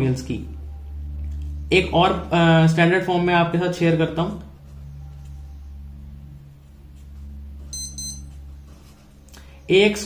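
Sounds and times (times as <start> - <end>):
low electrical hum: 0.0 - 10.0
high-pitched electronic beep: 7.7 - 8.3.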